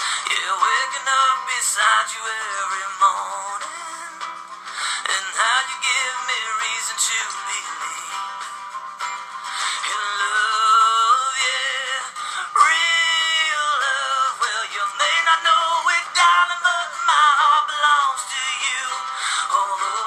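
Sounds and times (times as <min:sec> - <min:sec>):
song with person singing: 0:00.0 - 0:20.0.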